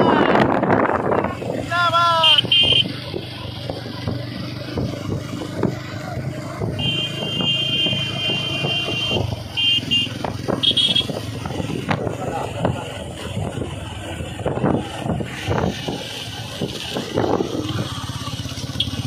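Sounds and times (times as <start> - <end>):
motorcycles running steadily: 0.0 - 19.0
high-pitched horn beeping: 2.2 - 2.9, 6.8 - 11.2.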